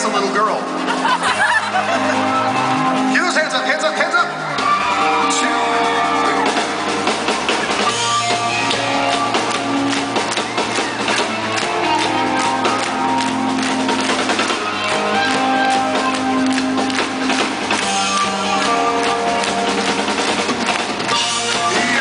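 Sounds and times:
electric guitar sustained notes: 0.0s - 22.0s
drum kit beat: 4.5s - 22.0s.

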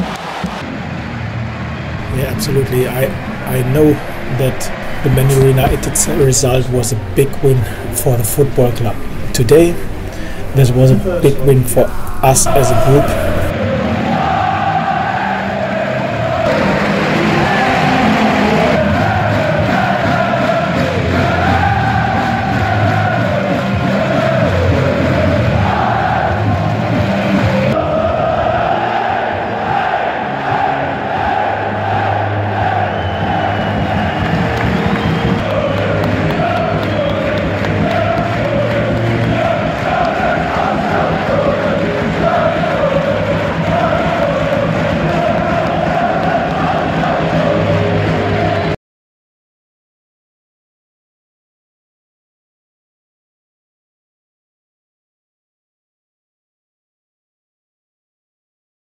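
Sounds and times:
crowd singing and chanting: 2.0s - 48.8s.

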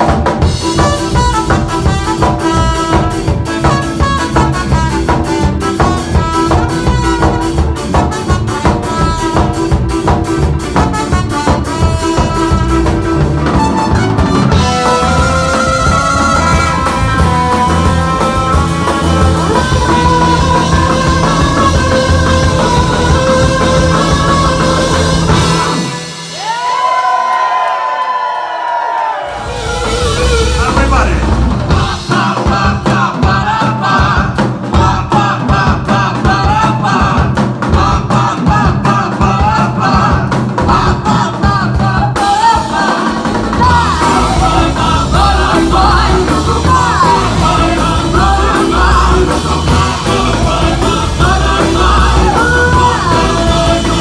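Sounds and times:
live rock band playing: 0.0s - 27.5s, 29.2s - 54.0s
singing and shouted vocals: 10.8s - 27.6s, 29.1s - 54.0s
sliding pitched notes: 11.3s - 26.4s.

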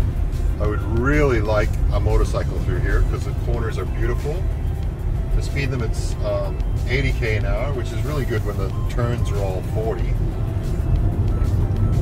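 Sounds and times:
car engine and road rumble: 0.0s - 12.0s
faint music: 0.0s - 12.0s.

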